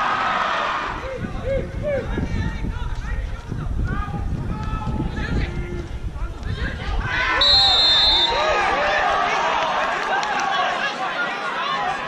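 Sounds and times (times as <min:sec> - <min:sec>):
crowd shouting: 0:00.0 - 0:02.2, 0:06.6 - 0:12.0
referee's whistle: 0:07.4 - 0:08.6.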